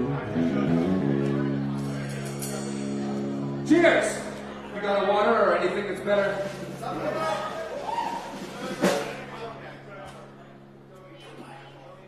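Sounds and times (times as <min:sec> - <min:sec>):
low amplifier hum: 0:00.0 - 0:12.0
drum hit with dropping pitch: 0:06.4 - 0:09.6.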